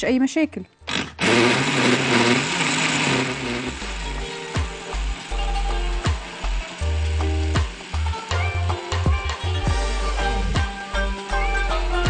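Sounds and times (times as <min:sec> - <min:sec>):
blender motor running: 0:00.9 - 0:12.0
background music with steady beat: 0:03.7 - 0:12.0.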